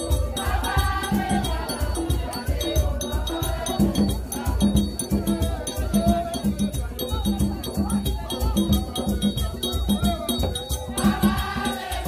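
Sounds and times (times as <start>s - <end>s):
crowd singing: 0.0s - 12.0s
drums beating fast rhythm: 0.0s - 12.0s
shakers: 0.0s - 12.0s.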